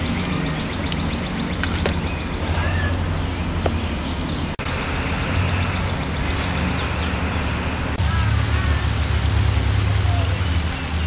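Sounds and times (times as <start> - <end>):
low motor hum: 0.0 - 11.0
outdoor background noise: 0.0 - 11.0.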